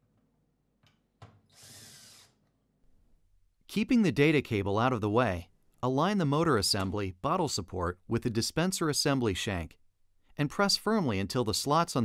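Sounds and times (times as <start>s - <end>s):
drill running: 1.6s - 2.4s.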